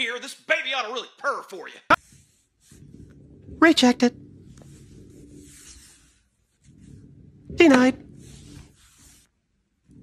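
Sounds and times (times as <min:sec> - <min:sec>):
ball rolling on wooden floor: 0:01.9 - 0:10.0
faint scraping hiss: 0:01.9 - 0:10.0.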